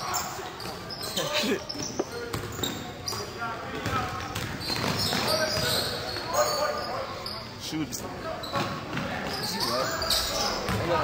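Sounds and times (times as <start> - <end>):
spectators' voices and calls: 0.0 - 11.0.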